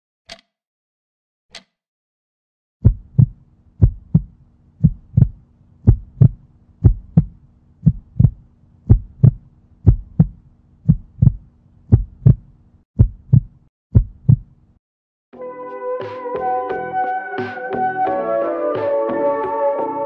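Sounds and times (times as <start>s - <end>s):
heartbeat thumps: 2.8s - 14.6s.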